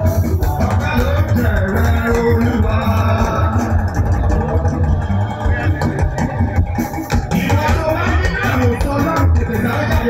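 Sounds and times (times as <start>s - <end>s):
bass guitar: 0.0s - 10.0s
drum kit: 0.0s - 10.0s
keyboard: 0.0s - 10.0s.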